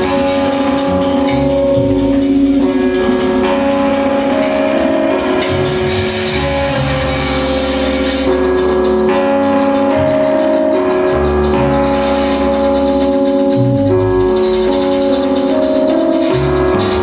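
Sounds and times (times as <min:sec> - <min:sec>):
electric bass line: 0:00.0 - 0:17.0
held keyboard chords: 0:00.0 - 0:17.0.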